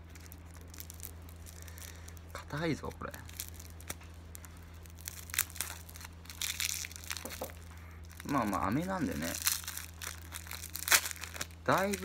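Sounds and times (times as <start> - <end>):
plastic wrapper crinkling: 0.0 - 12.0.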